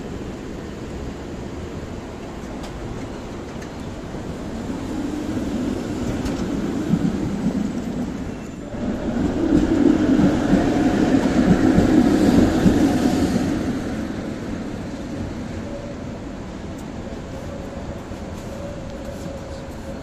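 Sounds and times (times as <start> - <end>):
tram wheels rumbling on rails: 0.0 - 20.0
tram whine: 0.0 - 20.0.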